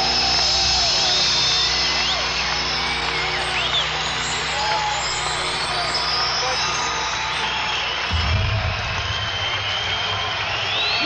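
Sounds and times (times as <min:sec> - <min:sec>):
crowd noise and voices: 0:00.0 - 0:11.0
strong low bass: 0:08.1 - 0:10.5.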